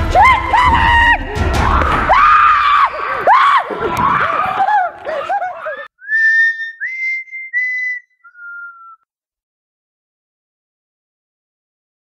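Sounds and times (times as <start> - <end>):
music: 0.0 - 3.4
high voices squealing: 3.1 - 9.0.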